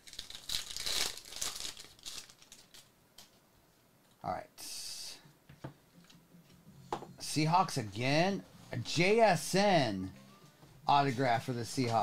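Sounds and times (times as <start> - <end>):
foil wrapper tearing and crinkling: 0.0 - 2.9.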